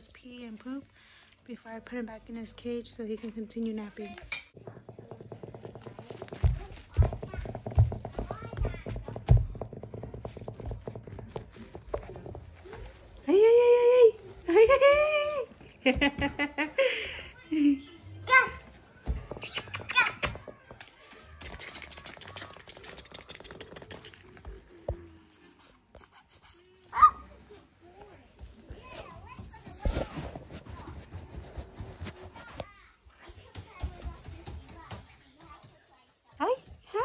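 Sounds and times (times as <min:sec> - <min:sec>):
dull thumps: 0:04.6 - 0:13.2
puppy claws clicking on wood floor: 0:19.2 - 0:25.0.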